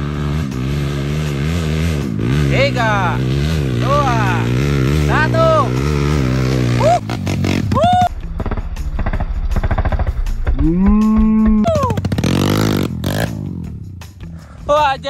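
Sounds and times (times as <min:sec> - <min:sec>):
dirt bike engine revving: 0:00.0 - 0:14.0.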